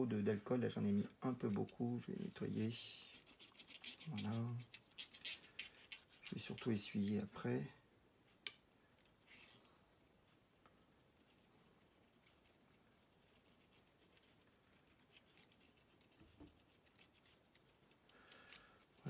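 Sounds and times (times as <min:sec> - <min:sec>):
swab scratching circuit board: 0:01.8 - 0:07.3.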